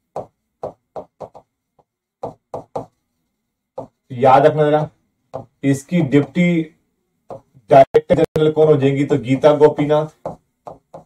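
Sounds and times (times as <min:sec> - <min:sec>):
pen tapping on screen: 0:00.0 - 0:03.0, 0:03.8 - 0:04.1, 0:05.3 - 0:06.4, 0:07.3 - 0:07.6, 0:10.1 - 0:11.0.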